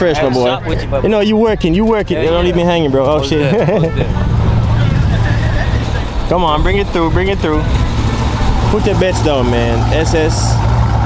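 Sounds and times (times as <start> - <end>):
car engine running: 0.9 - 11.0.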